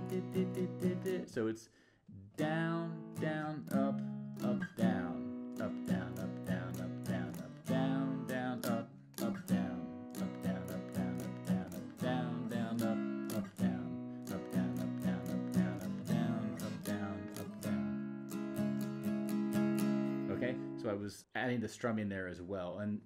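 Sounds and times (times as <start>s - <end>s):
acoustic guitar strumming: 0.0s - 1.4s, 2.3s - 20.9s.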